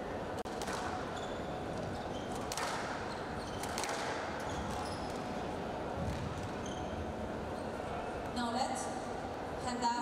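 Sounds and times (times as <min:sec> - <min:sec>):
squash ball crack off racket: 0:00.5 - 0:01.1, 0:02.4 - 0:03.0, 0:03.6 - 0:04.8
shoe squeak on court: 0:01.1 - 0:05.4, 0:06.0 - 0:07.8.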